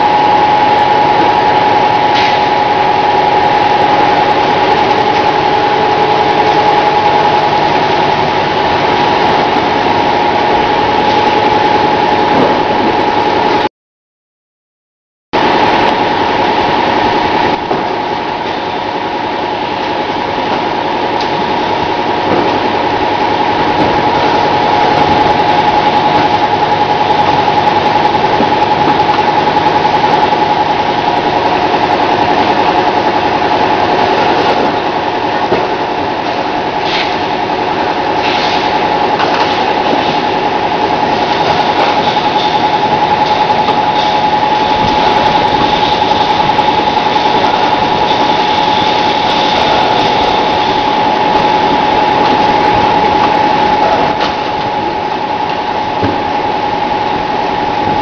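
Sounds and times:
high whine: 0.0 - 13.7, 15.4 - 58.0
machinery humming: 0.0 - 13.7, 15.4 - 58.0.

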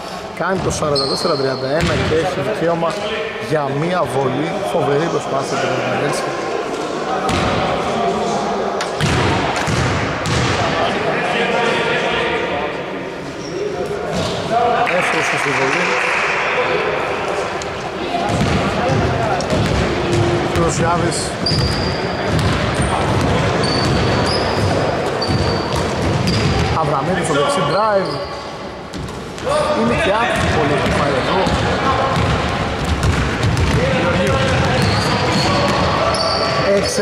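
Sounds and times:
players' voices echoing: 0.0 - 37.0
basketball bouncing on wooden floor: 9.0 - 10.5, 18.3 - 20.7, 21.4 - 26.8, 32.2 - 35.9.

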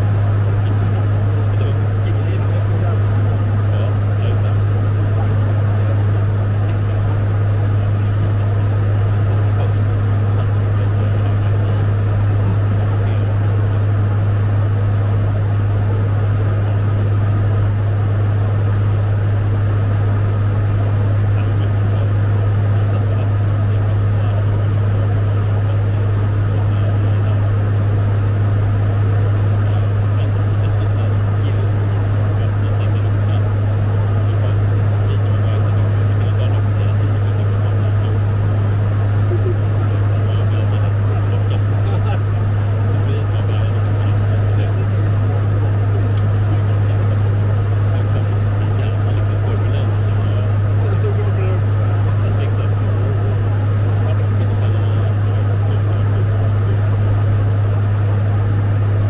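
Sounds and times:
turboprop engines droning: 0.0 - 59.0.

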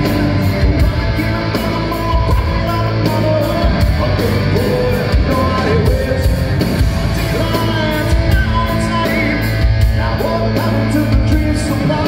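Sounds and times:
live heavy metal band: 0.0 - 12.0.

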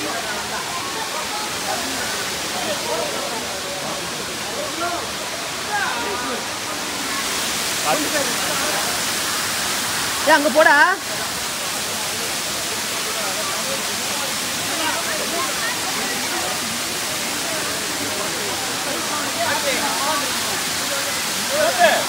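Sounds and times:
faint voices: 0.0 - 10.3, 11.0 - 22.0
waterfall rushing: 0.0 - 22.0.

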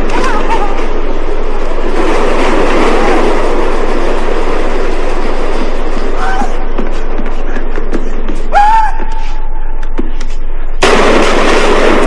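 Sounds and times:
subway train running: 0.0 - 10.8.

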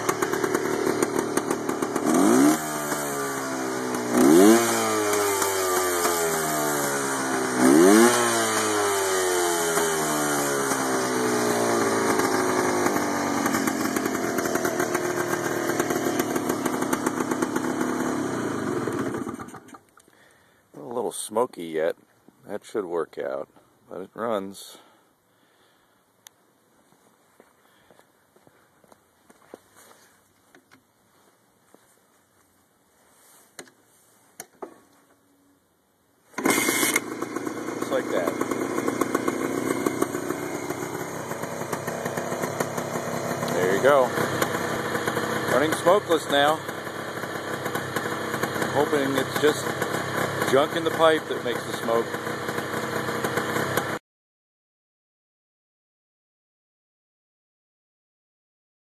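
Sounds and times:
two-stroke engine idling: 0.0 - 19.8, 36.4 - 54.0
footsteps: 26.8 - 35.2.

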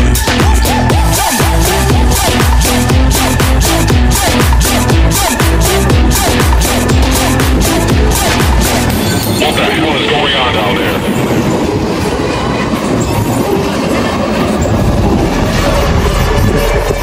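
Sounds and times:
electronic dance music: 0.0 - 11.3
train wheels clattering on rails: 7.0 - 17.0.

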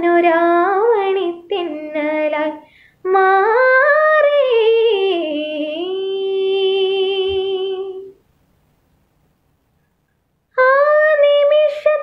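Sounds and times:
woman singing unaccompanied: 0.0 - 8.2, 10.5 - 12.0.

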